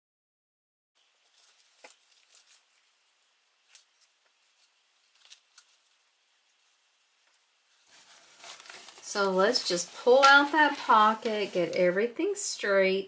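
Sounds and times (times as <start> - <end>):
fabric wallet rustling: 1.2 - 2.8, 7.7 - 11.8.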